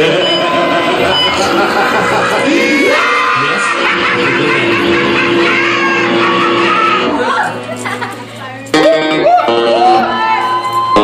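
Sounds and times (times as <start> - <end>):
music over loudspeakers: 0.0 - 11.0.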